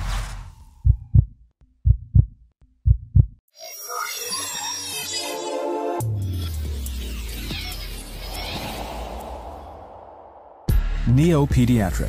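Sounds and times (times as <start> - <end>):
heartbeat double thumps: 0.7 - 3.4
whoosh: 8.2 - 11.1.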